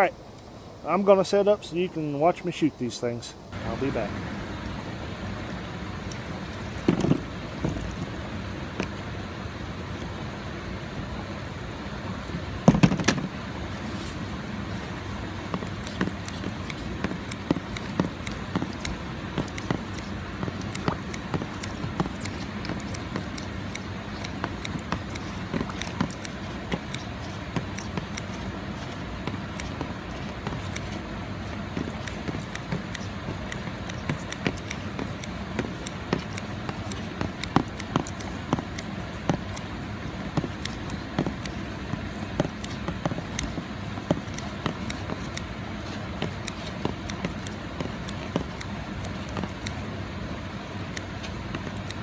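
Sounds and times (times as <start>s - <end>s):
sharp clicks and knocks: 12.6s - 13.3s, 15.5s - 49.8s
flowing water: 13.6s - 52.0s.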